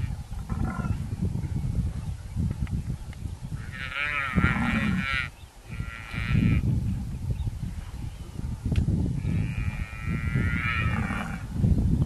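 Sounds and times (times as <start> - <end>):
buffalo calf bleating in distress: 3.6 - 6.6, 9.2 - 11.5.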